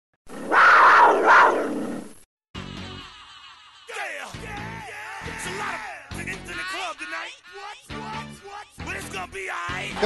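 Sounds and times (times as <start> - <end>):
animal roar: 0.3 - 2.1.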